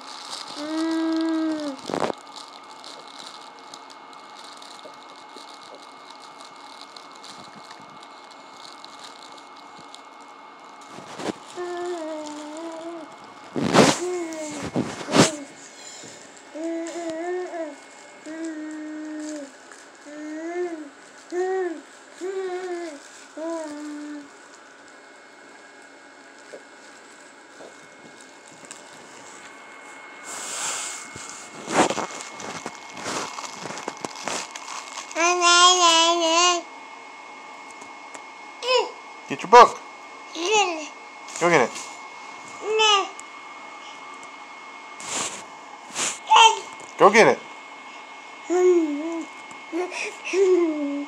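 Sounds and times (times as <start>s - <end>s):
baby humming: 0.4s - 2.1s, 11.5s - 13.2s, 13.8s - 24.3s, 35.1s - 36.7s, 40.3s - 41.0s, 42.6s - 43.2s, 46.2s - 46.8s, 48.5s - 51.0s
fabric book rustling and rattling: 31.0s - 35.2s.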